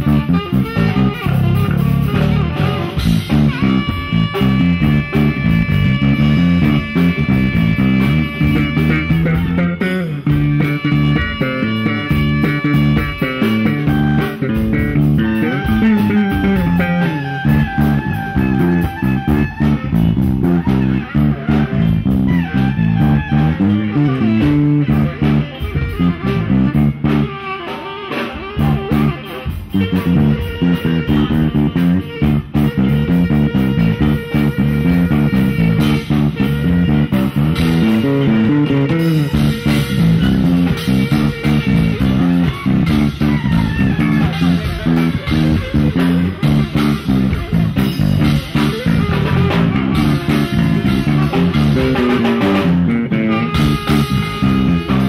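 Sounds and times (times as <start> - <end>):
electric bass line: 0.0 - 55.0
tenor saxophone: 0.0 - 55.0.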